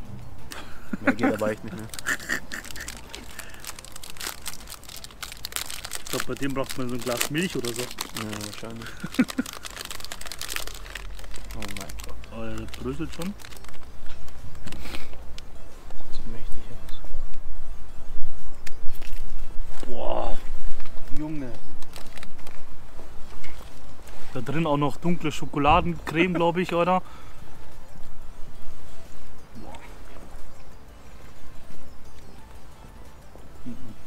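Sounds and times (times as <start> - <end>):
plastic wrapper crinkling and tearing: 1.3 - 14.9, 21.1 - 22.7.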